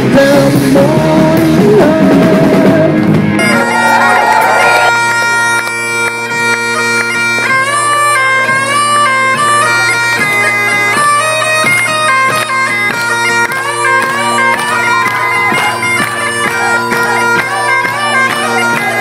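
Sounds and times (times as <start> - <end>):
bagpipes playing a tune: 3.3 - 19.0.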